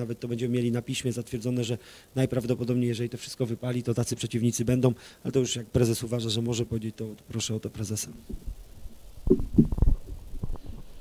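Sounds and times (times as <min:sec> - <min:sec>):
microphone handling thumps: 0:08.2 - 0:08.6, 0:09.2 - 0:10.9.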